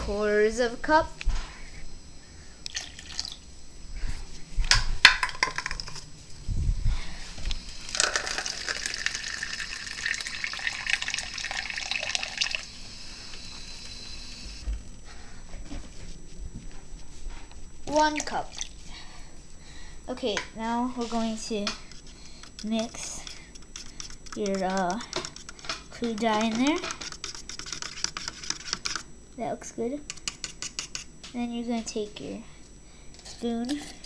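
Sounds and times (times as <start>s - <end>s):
faucet running water into cup: 2.7s - 3.4s, 7.7s - 12.8s.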